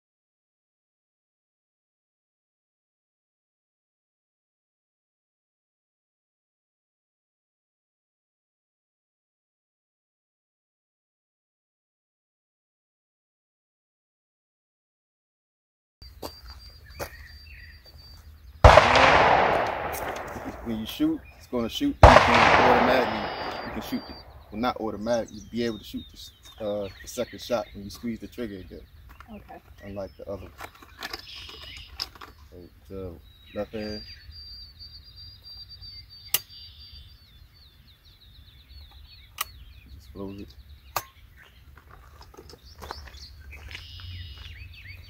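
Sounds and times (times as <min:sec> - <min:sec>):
shotgun shot with echo: 0:18.6 - 0:21.3, 0:22.0 - 0:24.7
bird trilling: 0:22.2 - 0:27.8.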